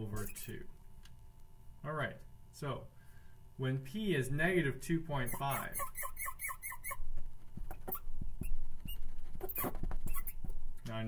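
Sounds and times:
marker squeaking on glass board: 0.0 - 0.6, 5.2 - 10.6.

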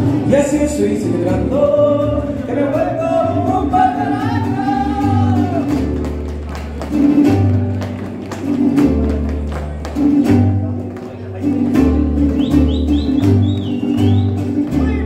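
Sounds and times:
deep bass guitar notes: 0.0 - 15.0
strummed guitar chords: 0.0 - 15.0
person singing: 0.3 - 5.8
high wavering whistle: 12.4 - 14.5.

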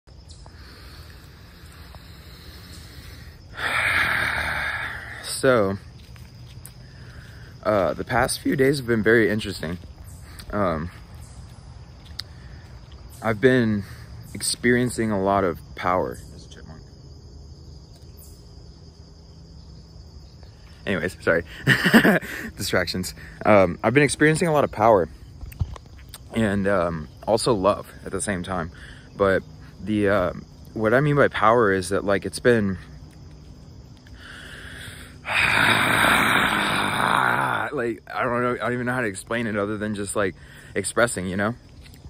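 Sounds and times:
crickets chirring: 0.1 - 42.0
person exhaling loudly: 0.6 - 5.3, 34.2 - 37.7.

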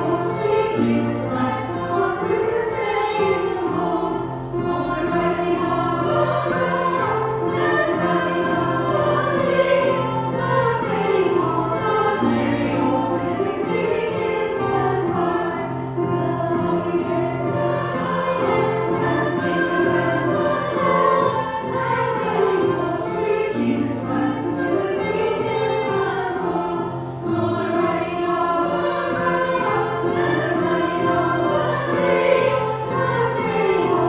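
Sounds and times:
grand piano accompaniment: 0.0 - 34.0
women's choir singing a carol: 0.0 - 34.0.

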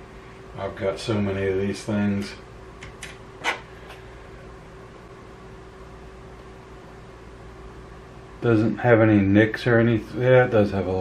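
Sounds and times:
fan hum with faint whine: 0.0 - 11.0.

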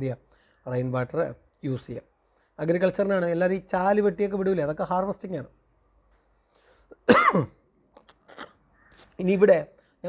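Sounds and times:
man clearing his throat: 7.0 - 7.6.

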